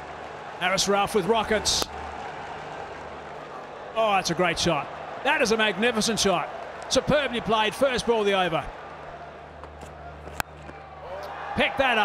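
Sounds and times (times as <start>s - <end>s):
low stadium background: 0.0s - 12.0s.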